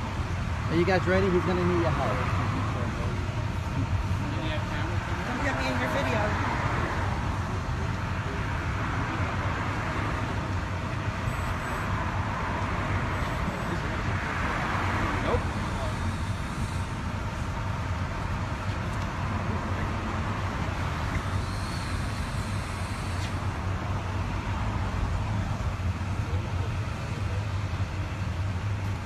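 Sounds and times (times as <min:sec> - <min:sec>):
cars passing: 0:00.0 - 0:29.0
road traffic hum: 0:00.0 - 0:29.0.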